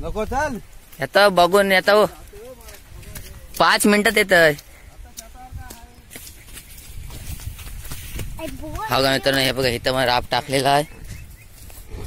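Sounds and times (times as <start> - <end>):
man talking: 0.0 - 5.9, 8.9 - 11.0
footsteps on ploughed soil: 0.6 - 12.0.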